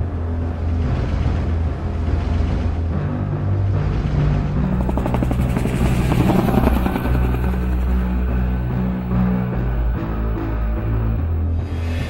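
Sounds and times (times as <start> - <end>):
soundtrack music with low notes: 0.0 - 12.0
helicopter rotor chopping: 4.6 - 11.4.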